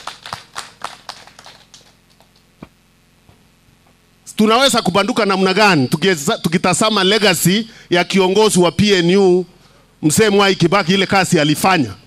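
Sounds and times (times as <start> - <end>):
scattered hand claps: 0.0 - 2.7.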